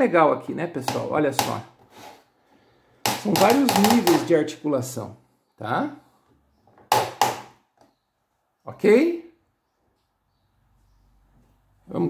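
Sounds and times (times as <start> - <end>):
plastic hinge clicking: 3.0 - 4.3.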